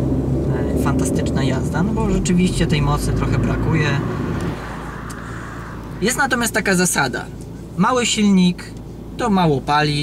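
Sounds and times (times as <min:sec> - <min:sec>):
car driving past: 0:00.0 - 0:06.8.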